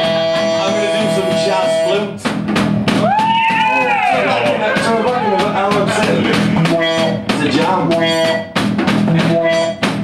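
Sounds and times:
electric guitar chords: 0:00.0 - 0:02.1
drum kit: 0:00.0 - 0:10.0.

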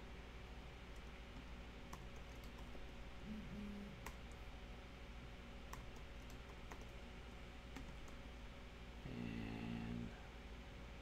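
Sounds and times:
computer keyboard keystrokes: 0:00.9 - 0:02.8, 0:05.7 - 0:07.0, 0:07.7 - 0:08.2
short low hum: 0:03.1 - 0:04.1.

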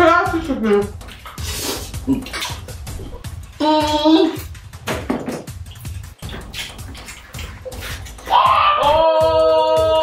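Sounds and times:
lip smacks and chewing: 0:00.9 - 0:03.3, 0:05.6 - 0:08.3.

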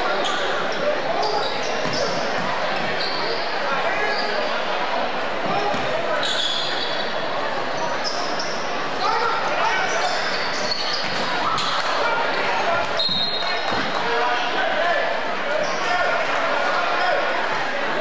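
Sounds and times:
sneaker squeaks: 0:00.0 - 0:04.5, 0:05.5 - 0:14.0.

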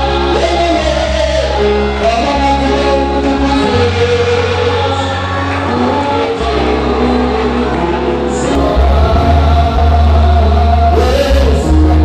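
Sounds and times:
amplified instrumental backing: 0:00.0 - 0:12.0
congregation singing: 0:00.0 - 0:12.0.

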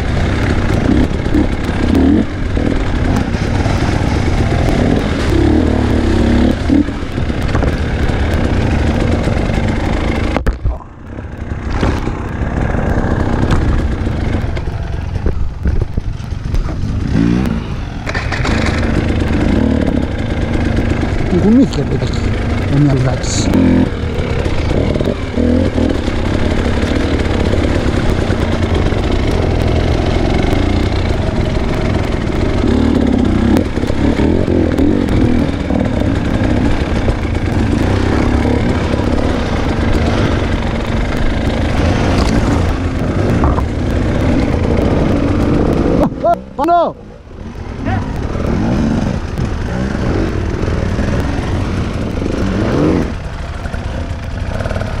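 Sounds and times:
dirt bike engine: 0:00.0 - 0:55.0.

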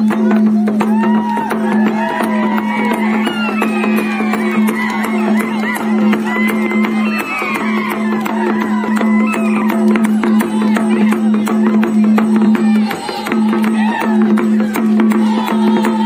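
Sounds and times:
drum and percussion strokes: 0:00.0 - 0:16.0.

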